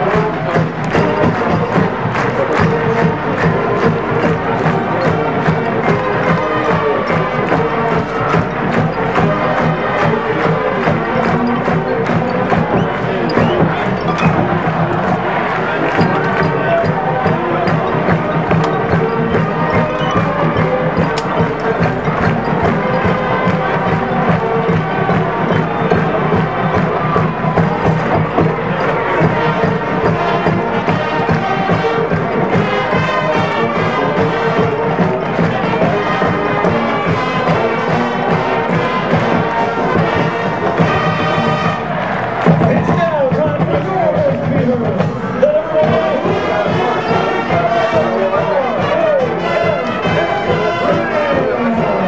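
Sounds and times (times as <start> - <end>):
drumline beat: 0.0 - 52.0
horn lines: 0.0 - 52.0.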